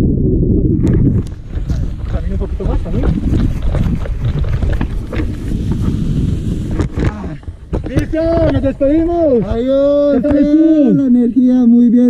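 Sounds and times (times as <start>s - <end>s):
wind buffeting microphone: 0.0s - 11.3s.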